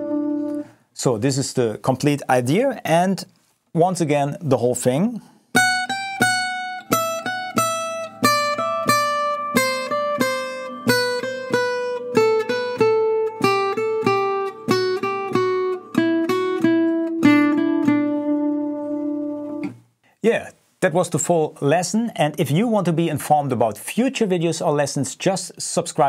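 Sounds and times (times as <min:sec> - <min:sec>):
acoustic guitar picking: 0:00.0 - 0:00.7, 0:05.5 - 0:19.8.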